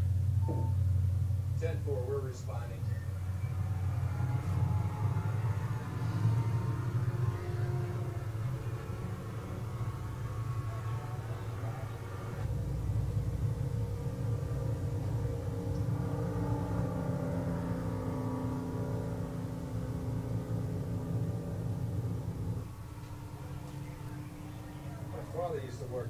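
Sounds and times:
motorboat engine rumble: 0.0 - 26.0.

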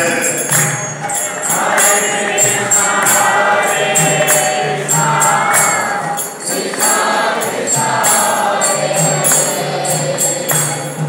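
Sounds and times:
group singing a devotional chant: 0.0 - 11.0
hand cymbals struck: 0.0 - 11.0.

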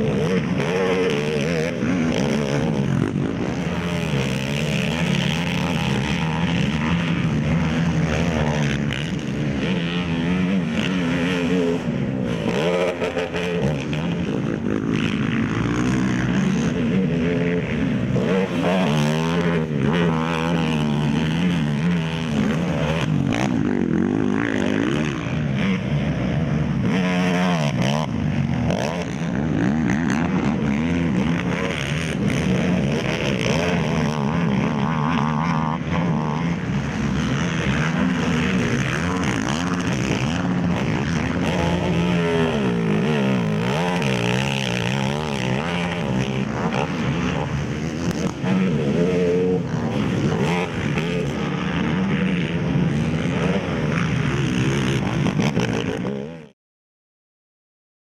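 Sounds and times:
quad engines revving: 0.0 - 56.5.

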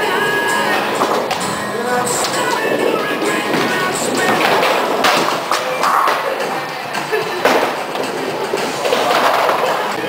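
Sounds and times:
bowling ball rolling on wooden lane: 0.0 - 10.0.

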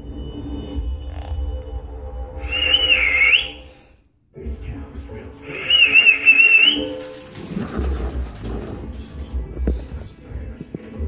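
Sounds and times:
eerie whistle-like melody: 2.1 - 3.9, 5.4 - 7.4.

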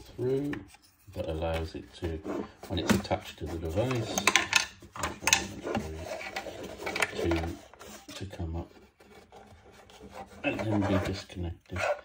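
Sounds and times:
man talking: 0.0 - 8.8, 10.4 - 12.0.

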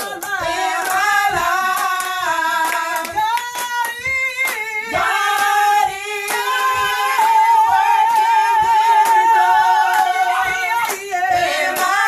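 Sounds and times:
hand claps: 0.0 - 12.0
women singing gospel: 0.0 - 12.0.

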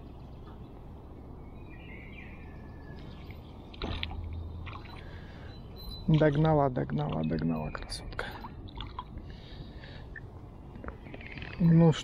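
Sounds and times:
light water splashing: 3.0 - 12.0.

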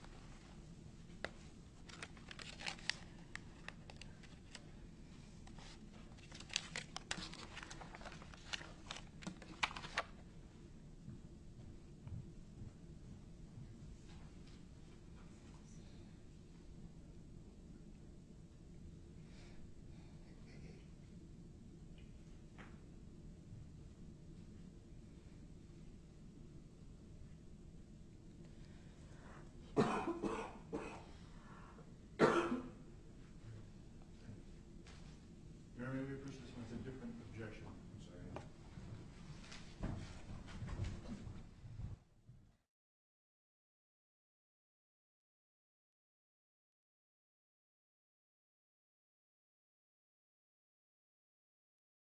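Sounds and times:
paper rustling: 1.2 - 4.7, 5.4 - 10.2
person coughing: 29.8 - 31.2, 32.2 - 32.8.

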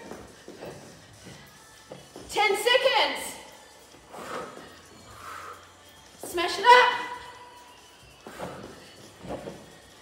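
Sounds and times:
woman breathing hard: 4.0 - 5.8.

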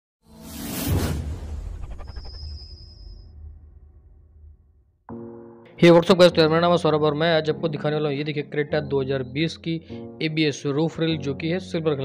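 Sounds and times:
whoosh: 0.3 - 5.0
deep boom: 0.6 - 5.1
intro music: 5.1 - 6.7.

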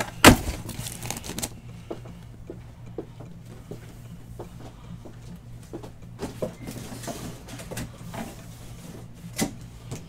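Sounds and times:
cardboard scraping rustle: 0.0 - 1.5
cardboard case thump: 0.2 - 0.7.

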